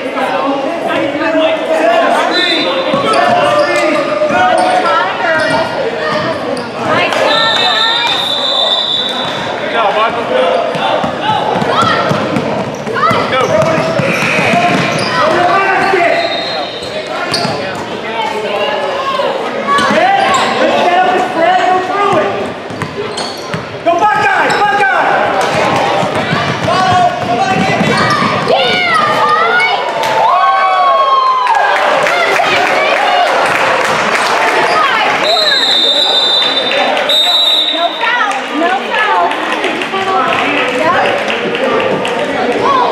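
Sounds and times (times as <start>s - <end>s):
basketball bouncing on court: 10.7s - 16.0s, 22.1s - 24.6s, 25.4s - 29.2s.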